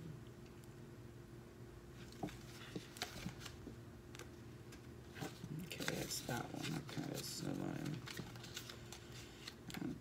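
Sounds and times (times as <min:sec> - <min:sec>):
paper pages turning: 0:02.0 - 0:03.7, 0:05.1 - 0:10.0.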